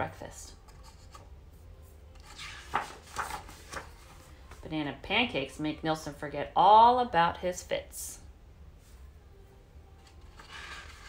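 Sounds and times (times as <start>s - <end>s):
book pages turning: 2.0s - 4.6s, 10.0s - 11.0s.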